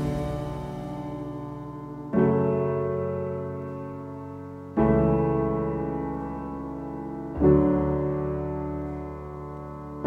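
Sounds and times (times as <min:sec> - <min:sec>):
soft piano chord: 0:00.0 - 0:10.0.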